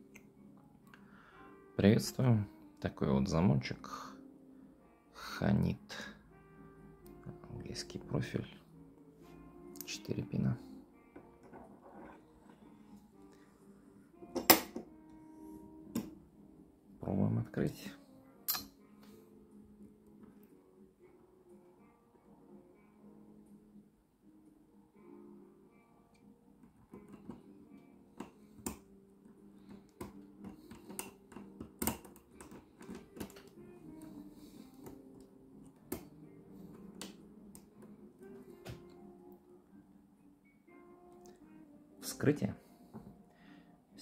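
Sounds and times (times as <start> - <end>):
soft background music: 0.0 - 44.0.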